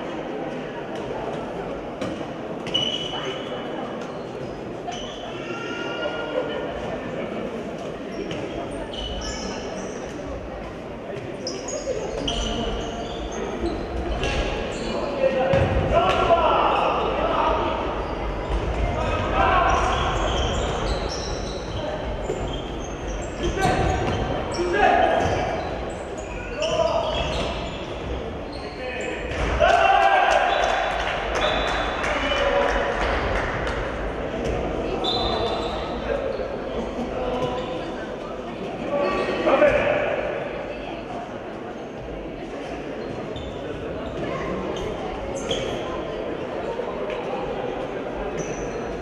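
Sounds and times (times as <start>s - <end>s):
shoes squeaking and footsteps: 2.6s - 3.2s, 19.7s - 29.4s, 48.3s - 49.0s
players and spectators shouting: 29.0s - 32.5s.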